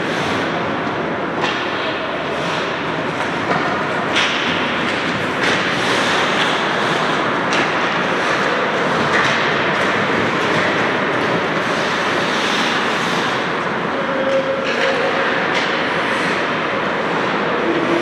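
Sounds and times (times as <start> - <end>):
skates scraping on ice: 0.0 - 0.6, 1.5 - 13.6, 14.2 - 18.0
hockey sticks clacking on ice: 0.0 - 18.0.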